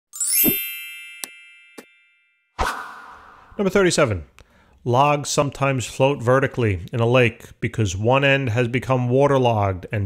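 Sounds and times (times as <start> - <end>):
bell-like chime: 0.1 - 2.6
rising sweep: 2.6 - 3.8.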